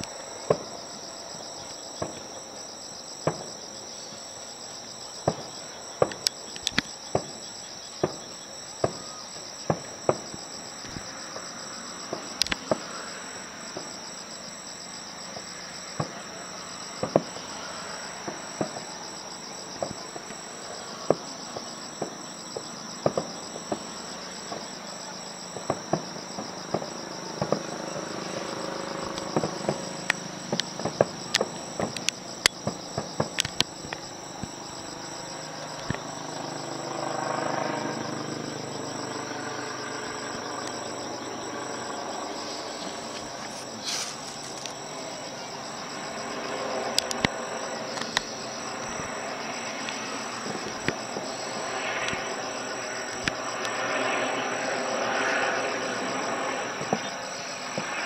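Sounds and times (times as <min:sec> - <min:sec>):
night insects chirring: 0:00.0 - 0:58.0.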